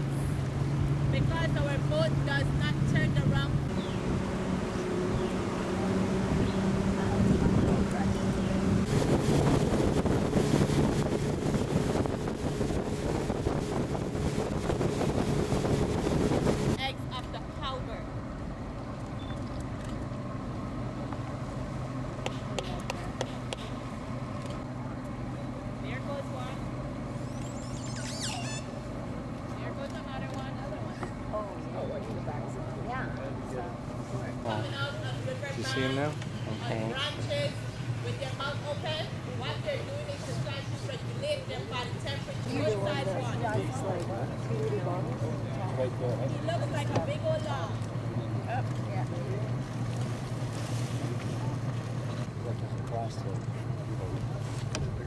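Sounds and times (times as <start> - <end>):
wind and water rushing: 0.0 - 16.9, 49.5 - 52.4
boat motor running: 0.0 - 55.0
short high chirping: 27.2 - 28.8.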